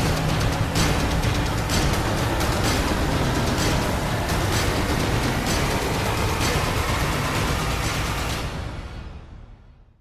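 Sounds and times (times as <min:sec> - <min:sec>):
news theme music with sharp hits: 0:00.0 - 0:09.3.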